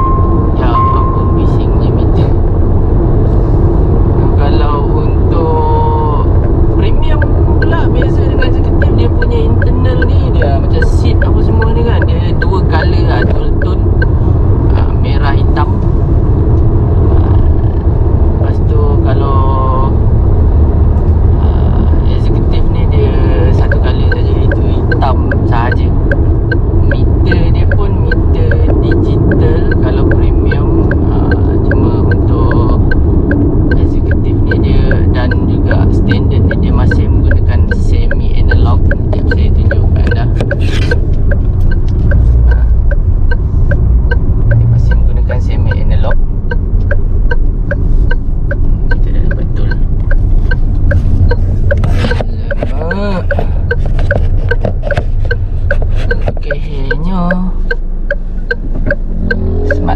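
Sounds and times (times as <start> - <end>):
light regular ticking: 0.0 - 59.9
road and engine rumble: 0.0 - 59.9
man talking: 0.5 - 2.4, 4.2 - 14.0, 18.4 - 20.0, 21.4 - 26.1, 26.8 - 33.0, 33.7 - 41.0, 44.6 - 46.2, 48.6 - 49.9, 51.7 - 53.7, 56.1 - 57.6.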